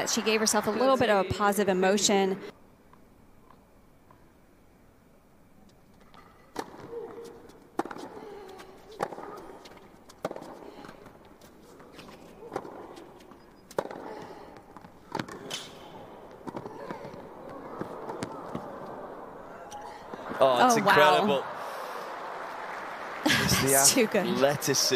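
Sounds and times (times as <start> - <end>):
crowd noise: 0.0 - 2.5, 14.0 - 24.9
tennis racket hitting ball: 6.1 - 11.2, 11.8 - 18.9.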